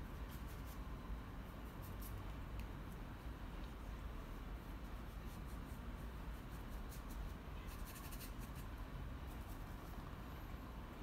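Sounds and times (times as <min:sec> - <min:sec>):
paintbrush strokes on paper: 0:00.0 - 0:10.4
low steady background noise: 0:00.0 - 0:11.0.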